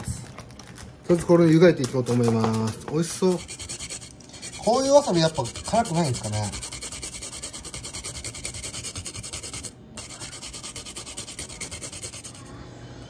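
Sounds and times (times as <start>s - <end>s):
root grated on metal grater: 3.3s - 12.5s.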